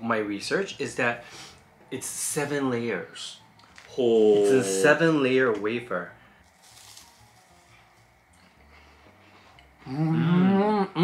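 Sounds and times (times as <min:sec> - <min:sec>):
chewing crisp biscuits: 0:06.4 - 0:08.6.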